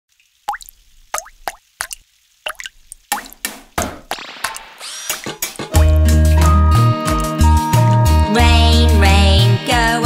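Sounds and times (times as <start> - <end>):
cartoon water-drop plops: 0.4 - 6.1
splashy noise: 0.5 - 6.1.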